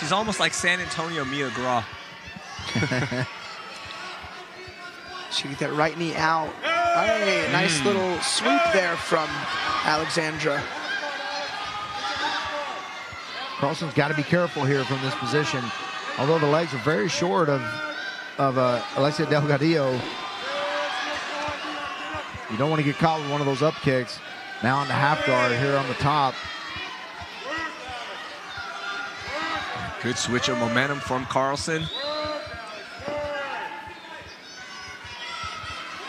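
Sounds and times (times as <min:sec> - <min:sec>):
crowd hubbub: 0:00.0 - 0:36.0
faint shouting voices: 0:00.0 - 0:36.0.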